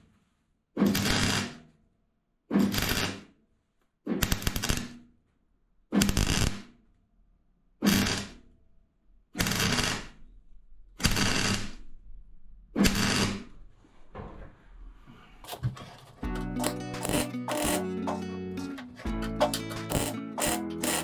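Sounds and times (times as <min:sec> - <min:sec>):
welding arc crackling: 0:06.0 - 0:06.6, 0:11.0 - 0:11.8, 0:16.6 - 0:18.2, 0:19.4 - 0:21.0.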